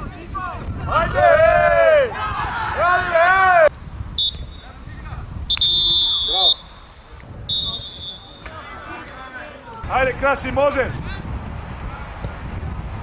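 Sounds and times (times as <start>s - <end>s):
players shouting: 0.2s - 4.9s, 5.6s - 11.2s
referee's whistle blasts: 4.2s - 4.8s, 5.5s - 6.9s, 7.5s - 8.6s.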